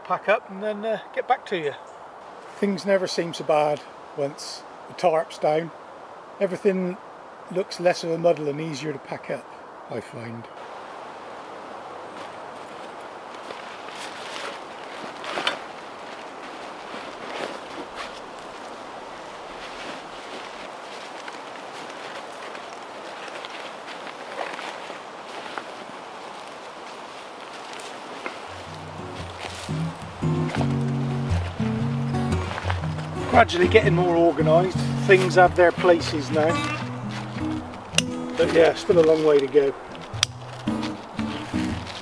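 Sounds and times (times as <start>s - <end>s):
steady outdoor hiss: 0.0s - 42.0s
camping gear rustling and clattering: 12.0s - 42.0s
background music with bass line: 28.7s - 38.9s, 40.2s - 42.0s.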